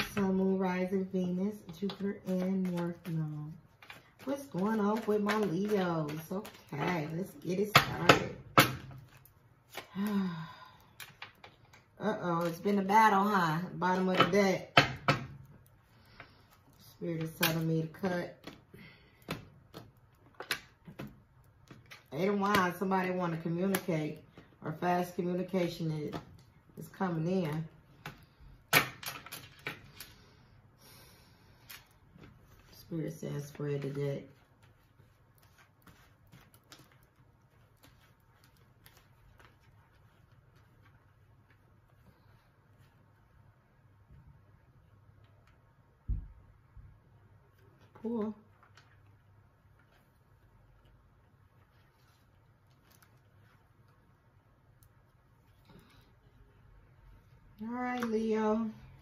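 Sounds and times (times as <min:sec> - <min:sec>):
soft card rustle: 0:00.1 - 0:08.1, 0:08.9 - 0:14.2, 0:31.4 - 0:43.5, 0:47.5 - 0:59.0
cards being shuffled: 0:01.6 - 0:08.2, 0:31.6 - 0:42.3.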